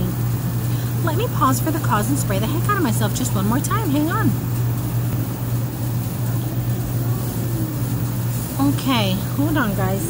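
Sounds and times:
air conditioning unit humming: 0:00.0 - 0:10.0.

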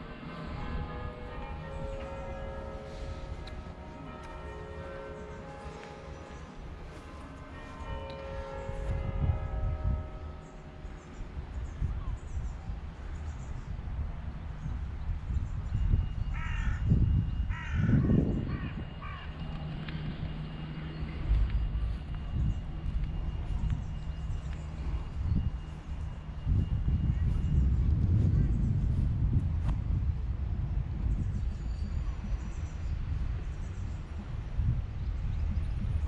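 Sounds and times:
crow cawing: 0:16.4 - 0:16.8, 0:17.5 - 0:19.3
low rumble: 0:16.8 - 0:36.0.

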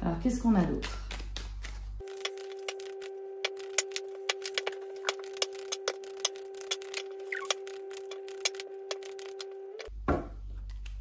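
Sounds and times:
cards shuffling and clicking: 0:00.9 - 0:09.9
low humming tone: 0:02.0 - 0:11.0.

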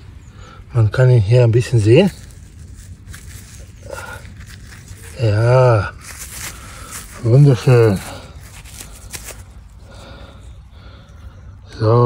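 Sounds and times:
soil crumbling and rustling: 0:00.0 - 0:11.0.

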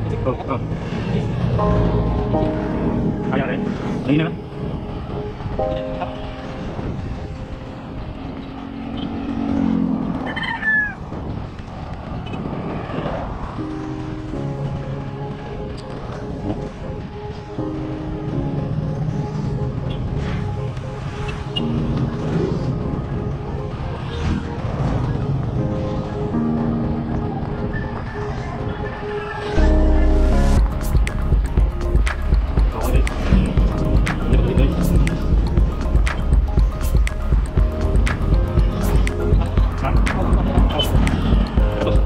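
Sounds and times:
background music held notes: 0:00.0 - 0:10.2, 0:13.2 - 0:42.0
wind and road noise: 0:00.0 - 0:42.0.

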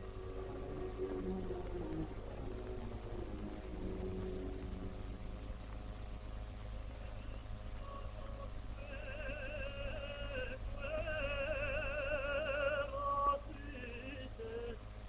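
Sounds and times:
low hum of old film soundtrack: 0:00.0 - 0:15.0
high singing voice with vibrato: 0:07.3 - 0:14.9.

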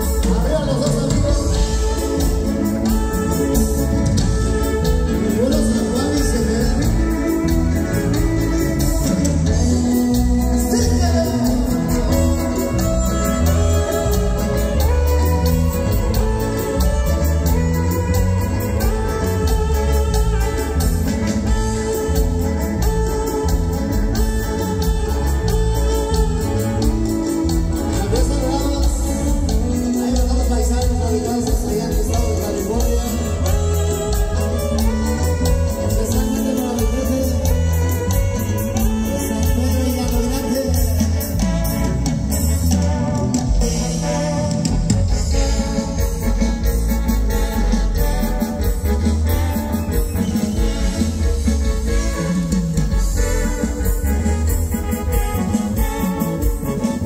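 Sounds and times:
bass guitar: 0:00.0 - 0:57.0
drum kit: 0:00.0 - 0:57.0
electric guitar: 0:00.0 - 0:57.0
keyboard: 0:00.0 - 0:57.0
live band playing dance music: 0:00.0 - 0:57.0.

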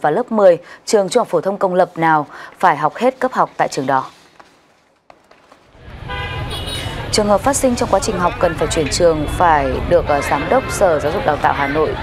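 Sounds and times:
street traffic noise: 0:02.0 - 0:12.0
vehicle horn steady tone: 0:06.0 - 0:07.2.

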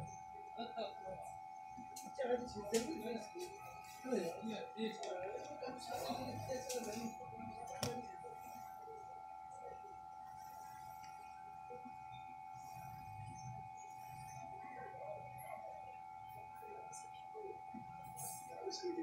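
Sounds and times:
faint low murmuring: 0:00.0 - 0:19.0
high electronic whine: 0:05.9 - 0:19.0.

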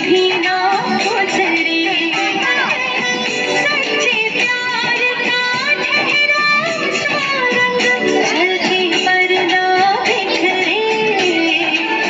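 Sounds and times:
loud dance song: 0:00.0 - 0:12.0.

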